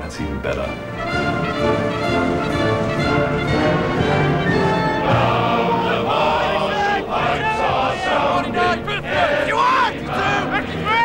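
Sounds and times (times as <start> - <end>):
sustained chords: 0.0 - 11.0
choir singing: 1.0 - 11.0.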